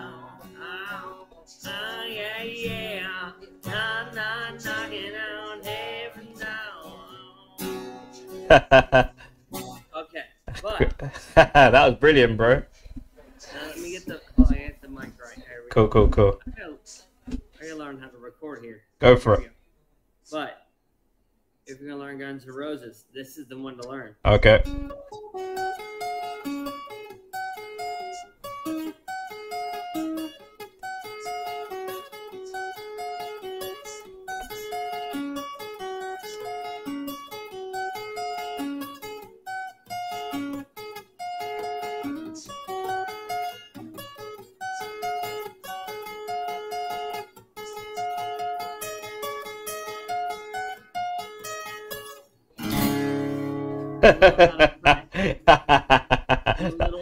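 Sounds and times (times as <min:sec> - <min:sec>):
acoustic guitar melodic riff: 0:00.0 - 0:10.0, 0:10.6 - 0:16.6, 0:19.0 - 0:19.5, 0:23.8 - 0:57.0.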